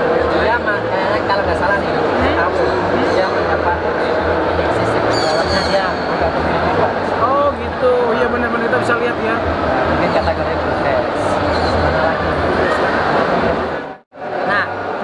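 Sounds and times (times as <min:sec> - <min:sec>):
men talking close up: 0:00.0 - 0:13.8
murmur of voices: 0:00.0 - 0:15.0.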